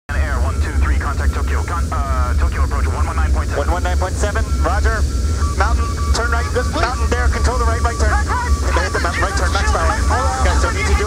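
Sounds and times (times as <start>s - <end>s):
cockpit noise rumble: 0.1s - 11.0s
hurried overlapping voices: 0.1s - 11.0s.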